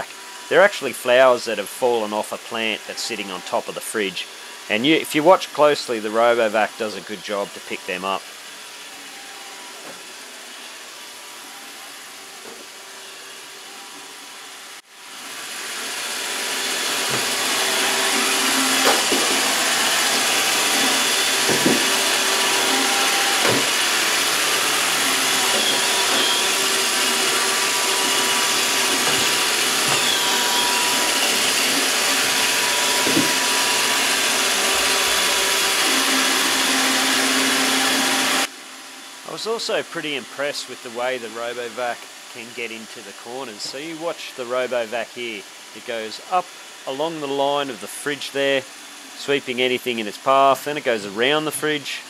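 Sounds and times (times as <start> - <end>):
robot vacuum whirring: 0.0 - 38.5.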